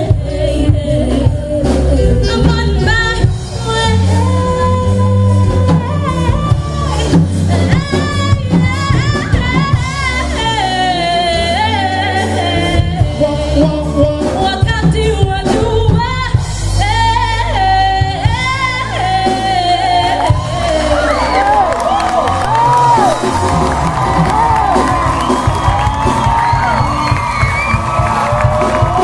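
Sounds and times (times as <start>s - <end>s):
woman singing: 0.0s - 21.7s
live band playing: 0.0s - 29.0s
audience whooping and cheering: 19.6s - 29.0s.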